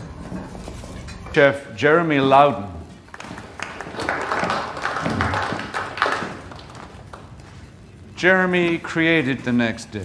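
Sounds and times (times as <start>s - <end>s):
noisy hiss: 0.0s - 10.0s.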